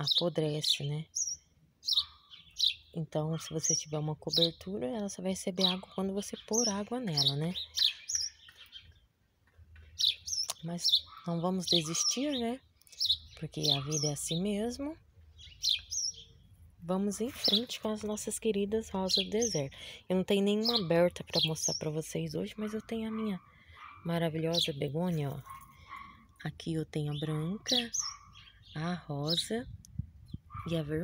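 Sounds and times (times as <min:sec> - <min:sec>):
bird chirping: 0:00.0 - 0:31.0.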